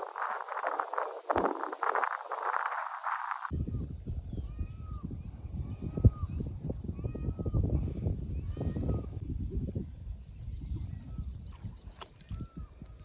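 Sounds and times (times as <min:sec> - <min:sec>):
wind on microphone: 0:00.0 - 0:13.0.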